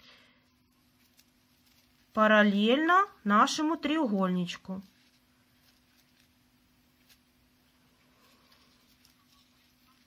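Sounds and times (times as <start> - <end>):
faint soft rustle: 0.0 - 10.0.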